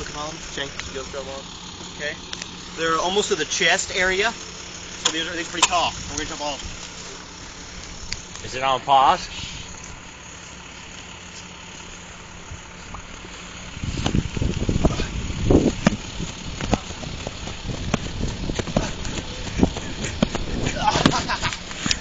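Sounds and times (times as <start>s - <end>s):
steady low hiss: 0.0s - 22.0s
wind rumbling on microphone: 13.6s - 21.7s.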